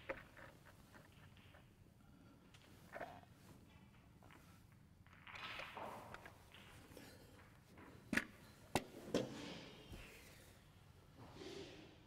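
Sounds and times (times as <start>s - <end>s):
snooker balls clicking together: 0.0s - 9.0s
soft handling and rustling: 0.0s - 11.2s.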